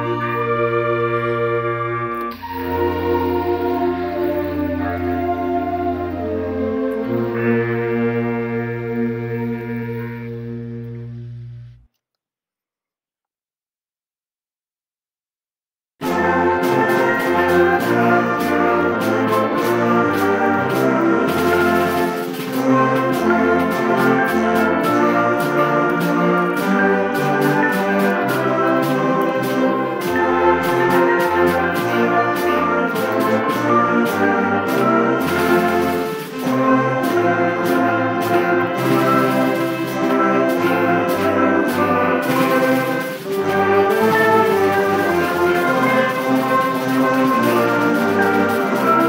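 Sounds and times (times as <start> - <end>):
concert band sustained chords: 0.0 - 11.9, 16.0 - 49.0.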